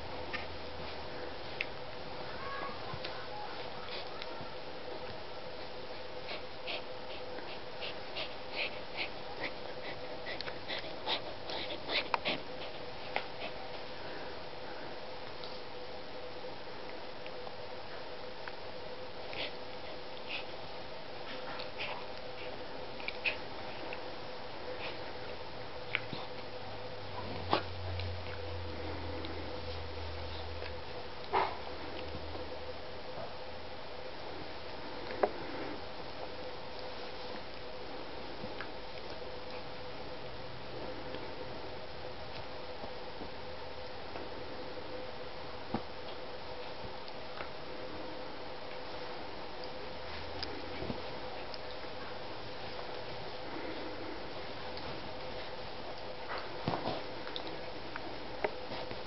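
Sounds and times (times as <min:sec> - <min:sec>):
steady background hiss: 0:00.0 - 0:59.0
steady low hum: 0:00.0 - 0:59.0.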